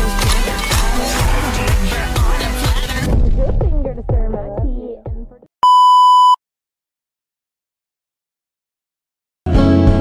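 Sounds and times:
pop music: 0:00.0 - 0:05.4
electronic beep: 0:05.6 - 0:06.4.

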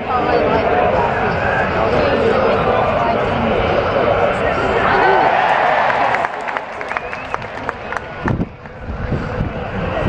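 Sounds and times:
crowd chattering: 0:00.0 - 0:10.0
hand claps: 0:05.9 - 0:08.8.

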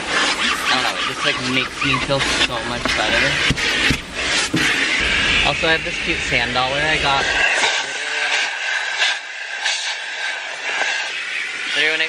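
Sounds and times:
vacuum cleaner running: 0:00.0 - 0:12.0.

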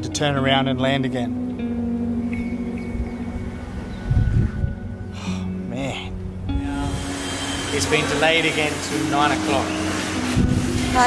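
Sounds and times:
background music held tones: 0:00.0 - 0:11.0.

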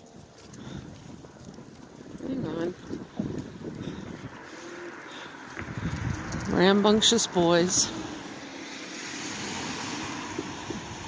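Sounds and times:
goat hooves on pavement: 0:00.0 - 0:11.0.

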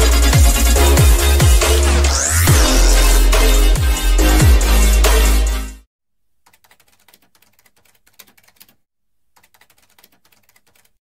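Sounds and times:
keyboard typing clicks: 0:06.4 - 0:08.8, 0:09.4 - 0:11.0.

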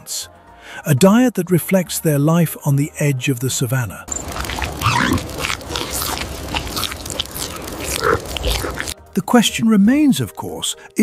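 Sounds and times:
chimpanzees chewing and crunching: 0:04.1 - 0:09.0.

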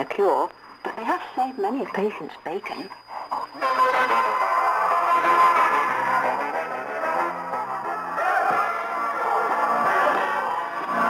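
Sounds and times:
shortwave radio music: 0:00.0 - 0:11.0.

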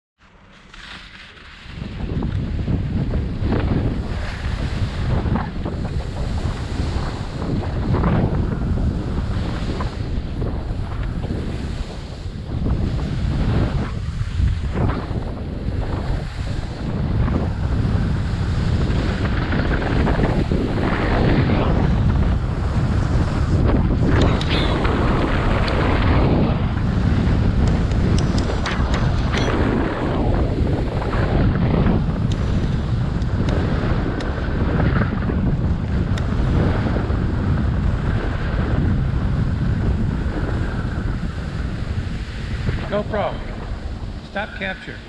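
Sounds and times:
skis carving on packed snow: 0:00.2 - 0:15.3
wind buffeting microphone: 0:00.4 - 0:45.0.

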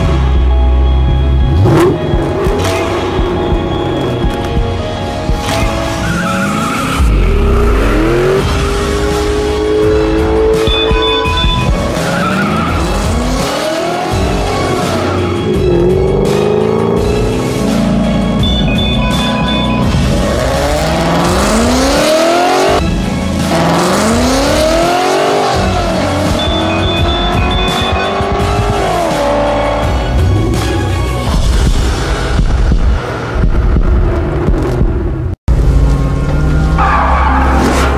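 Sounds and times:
background music: 0:00.0 - 0:34.0
car engine accelerating hard: 0:00.0 - 0:37.9
tyre squeal: 0:10.6 - 0:13.3, 0:26.2 - 0:28.2.

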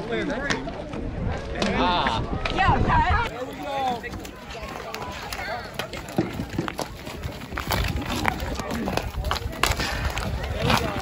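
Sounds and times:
hockey sticks clacking on ball: 0:03.9 - 0:11.0.

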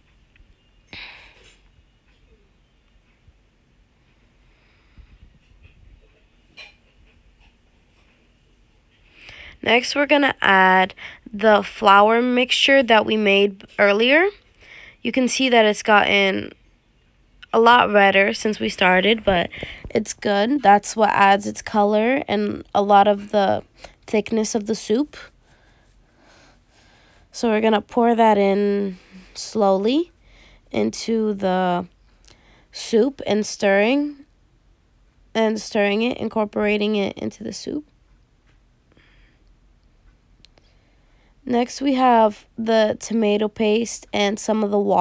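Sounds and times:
breath: 0:04.2 - 0:05.4, 0:09.2 - 0:09.6, 0:14.6 - 0:15.0, 0:19.5 - 0:19.9, 0:32.3 - 0:32.7, 0:38.9 - 0:39.5, 0:40.6 - 0:41.4.

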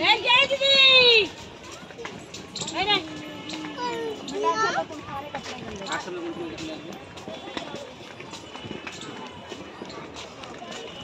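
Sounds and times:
footsteps on paved path: 0:00.0 - 0:11.0
people talking: 0:00.0 - 0:11.0.

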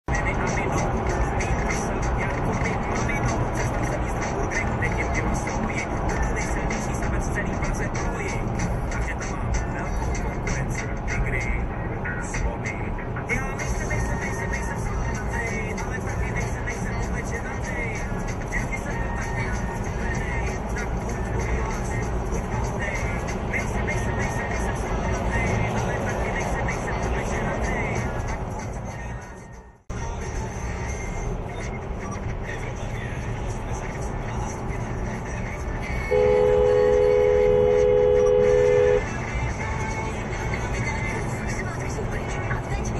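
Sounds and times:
music with singing voice: 0:00.1 - 0:42.9.

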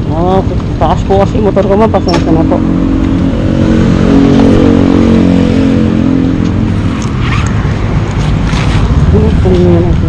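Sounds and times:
vehicle engine humming: 0:00.0 - 0:10.0
brief scratchy zip: 0:06.9 - 0:07.6, 0:08.2 - 0:08.9.

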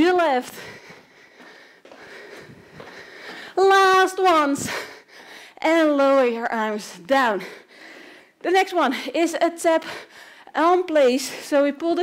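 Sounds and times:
woman breathing: 0:00.4 - 0:03.6, 0:04.4 - 0:05.6, 0:07.1 - 0:09.2, 0:09.8 - 0:10.6.

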